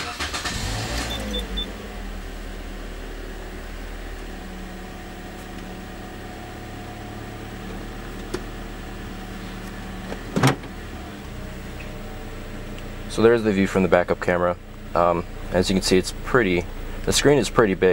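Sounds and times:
car engine starting and idling: 0:00.0 - 0:17.9.

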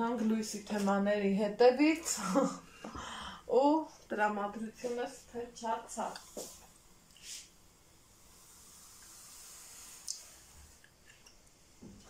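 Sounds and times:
pot hissing on stove: 0:04.8 - 0:12.0.

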